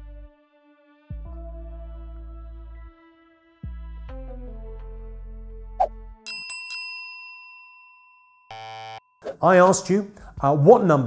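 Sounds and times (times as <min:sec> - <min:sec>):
bell-like ding: 0:06.3 - 0:09.2.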